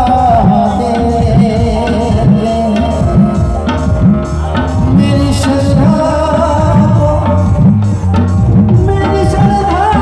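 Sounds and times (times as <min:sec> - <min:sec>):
hand drum beating rhythm: 0:00.0 - 0:10.0
harmonium sustaining notes: 0:00.0 - 0:10.0.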